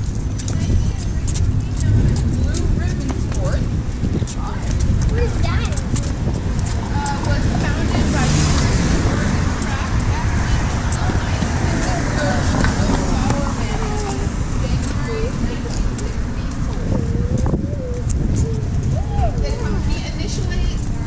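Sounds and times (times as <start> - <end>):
car traffic rumble: 0.0 - 21.0
footsteps: 0.0 - 21.0
indistinct voices: 0.0 - 21.0.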